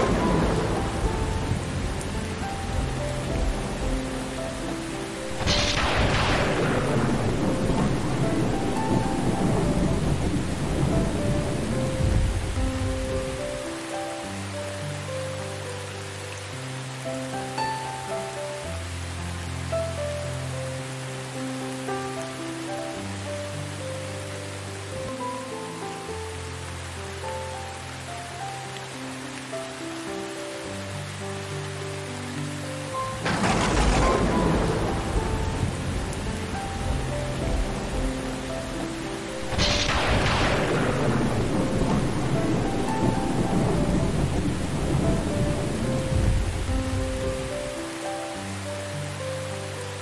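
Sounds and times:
thunder rolling: 0.0s - 4.2s, 5.3s - 13.6s, 33.2s - 47.6s
soft slow music: 0.0s - 50.0s
steady rain: 0.0s - 50.0s.

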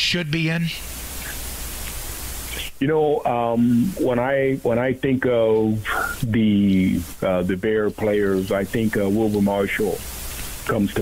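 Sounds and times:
man speaking over telephone: 0.0s - 0.8s, 2.5s - 10.0s, 10.7s - 11.0s
telephone line hiss: 0.0s - 11.0s.

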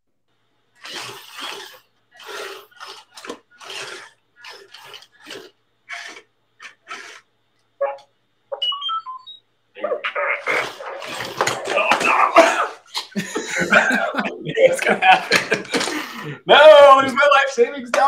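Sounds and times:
short bursts of noise: 0.8s - 12.6s
electronic beeps and chirps: 7.8s - 10.0s
people laughing: 9.8s - 17.2s
voices: 9.8s - 18.0s.

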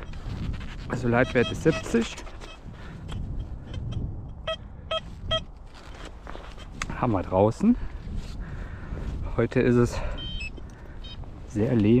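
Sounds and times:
metal detector beeps: 0.0s - 2.7s, 3.8s - 5.6s, 10.1s - 11.2s.

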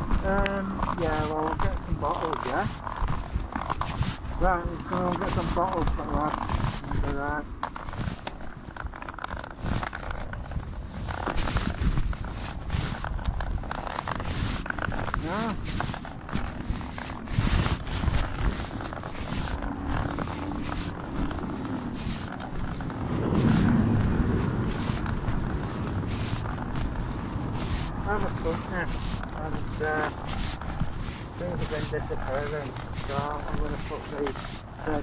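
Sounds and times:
fabric rubbing on microphone: 0.0s - 35.0s
low rumble: 16.0s - 31.4s.

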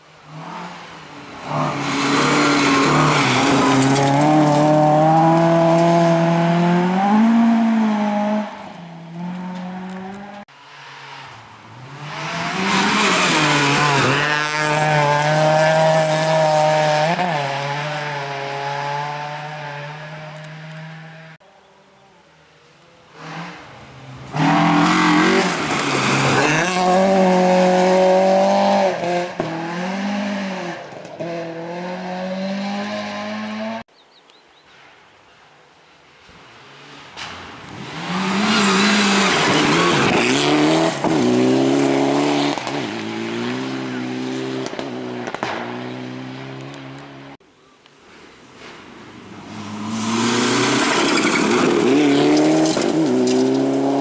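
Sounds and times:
rally car engines revving: 0.1s - 21.4s, 23.1s - 33.9s, 36.7s - 47.4s, 49.2s - 54.0s.

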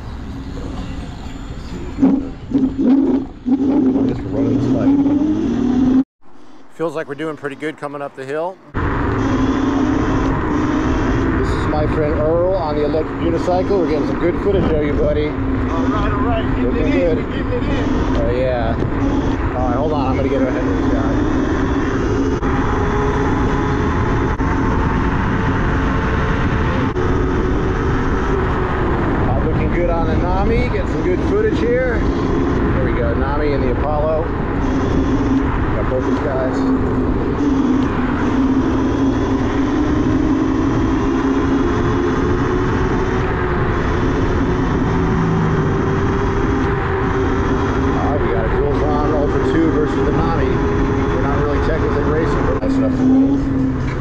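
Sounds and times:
wind buffeting microphone: 8.7s - 54.0s.

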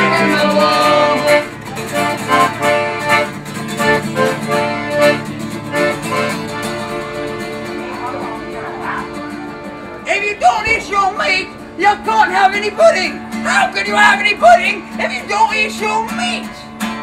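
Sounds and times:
accordion chords: 0.0s - 17.0s
strummed acoustic guitar: 0.0s - 17.0s.

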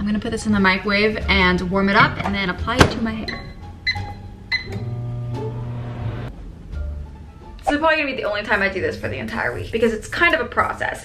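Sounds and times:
microwave humming: 2.9s - 6.3s
microwave keypad beep: 3.2s - 4.9s.

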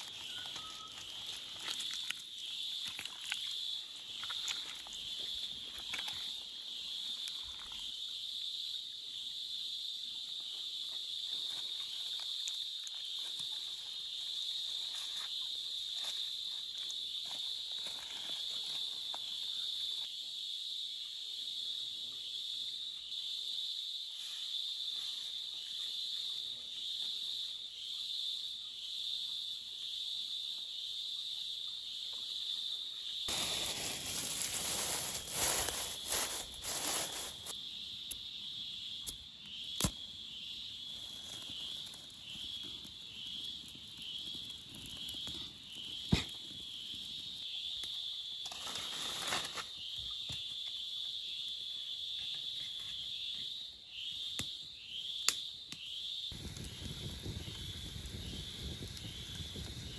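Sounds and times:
insects chirping: 0.0s - 59.9s.

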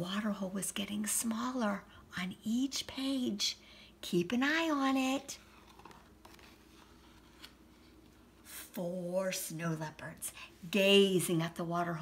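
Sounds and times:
book page turning: 5.4s - 8.3s.

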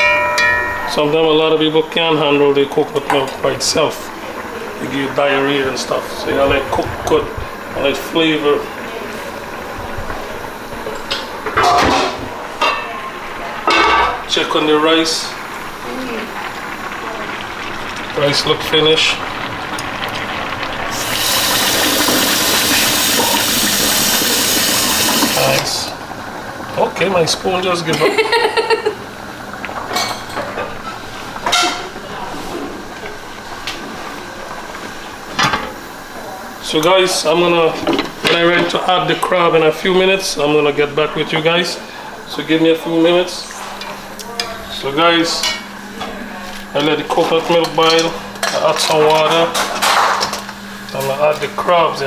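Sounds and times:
steady background hiss: 0.0s - 52.0s
metal pot lid clanking: 11.0s - 12.9s
metal kitchenware clinking: 11.0s - 13.0s.

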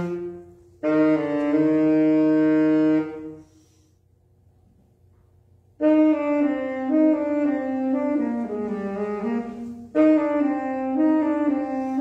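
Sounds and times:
saxophone holding long note: 0.0s - 3.7s, 5.8s - 12.0s.

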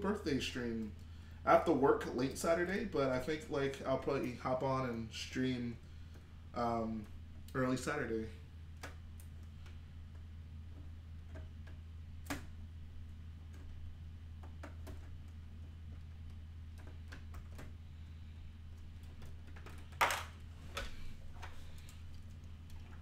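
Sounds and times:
steady low hum: 0.0s - 23.0s
plastic bricks clicking and knocking: 19.2s - 20.9s.

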